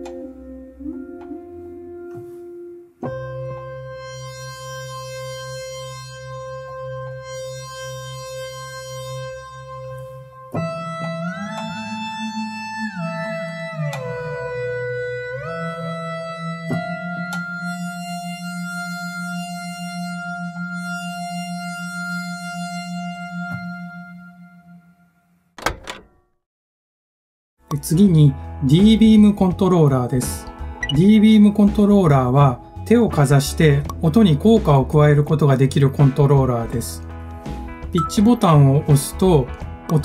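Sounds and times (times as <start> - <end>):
synthesizer note held: 0.0 - 25.2, 38.0 - 39.0
bell-like synthesizer note: 38.0 - 38.8.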